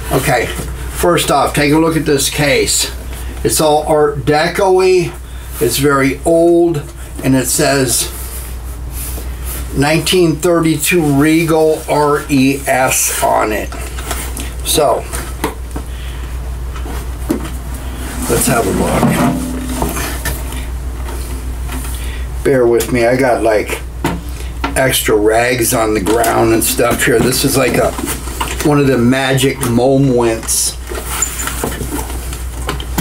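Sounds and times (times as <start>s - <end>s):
steady low hum: 0.0s - 29.0s
low hum: 15.6s - 22.6s.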